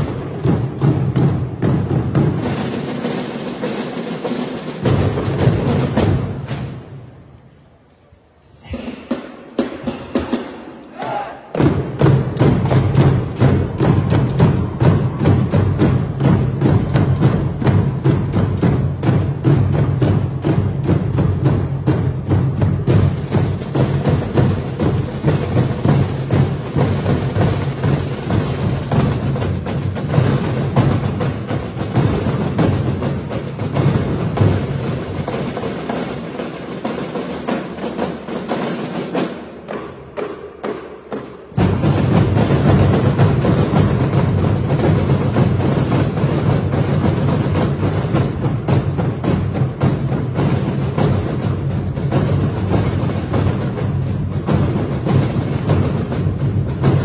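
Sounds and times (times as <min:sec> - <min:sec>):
marching band playing: 0:00.0 - 0:07.3, 0:08.7 - 0:57.0
snare and bass drums: 0:00.0 - 0:07.3, 0:08.6 - 0:57.0.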